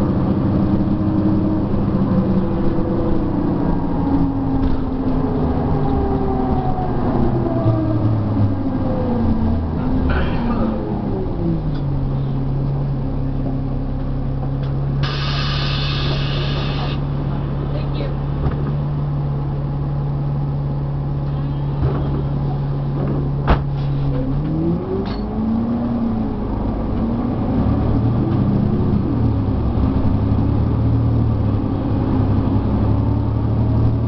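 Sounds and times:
bus diesel engine idling: 9.6s - 24.2s
engine revving as bus pulls away: 23.7s - 34.0s.

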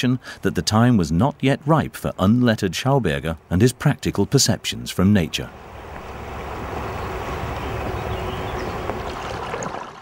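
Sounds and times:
river water rushing: 5.5s - 10.0s.

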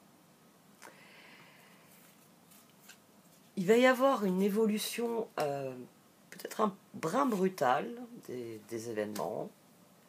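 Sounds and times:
cards rustling: 1.9s - 3.6s.

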